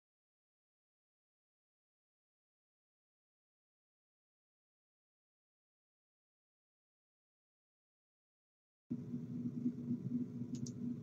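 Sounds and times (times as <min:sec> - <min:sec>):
low hum of room noise: 0:08.9 - 0:11.0
faint clicks: 0:10.5 - 0:10.9.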